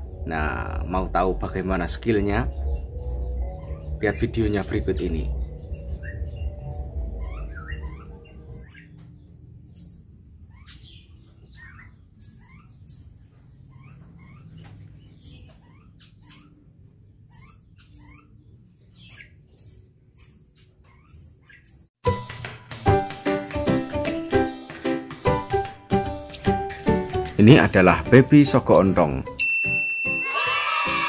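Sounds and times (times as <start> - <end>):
background music: 0.0 - 8.8, 22.0 - 31.0
bird chirping: 0.0 - 22.0, 26.0 - 29.4.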